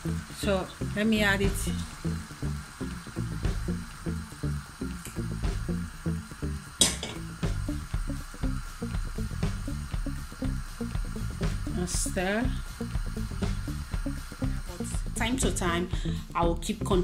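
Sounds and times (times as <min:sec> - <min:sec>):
background music with bass beat: 0:01.4 - 0:06.3, 0:07.2 - 0:17.0.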